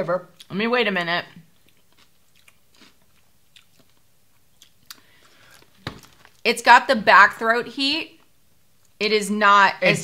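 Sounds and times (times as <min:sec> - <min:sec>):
person chewing crunchy food: 0:01.4 - 0:06.4.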